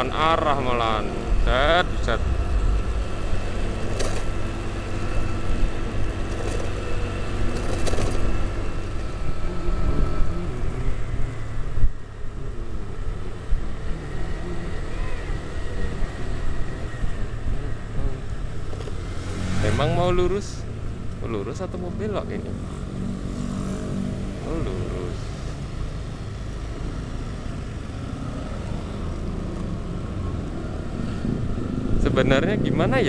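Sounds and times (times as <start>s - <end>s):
motor scooter engine hum: 0.0s - 32.0s
road and wind noise: 0.0s - 33.0s
traffic: 0.0s - 33.0s.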